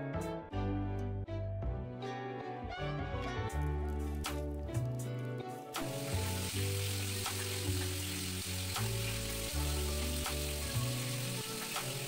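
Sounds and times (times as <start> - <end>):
background music: 0.0 - 12.0
batter sizzling in waffle maker: 5.8 - 12.0.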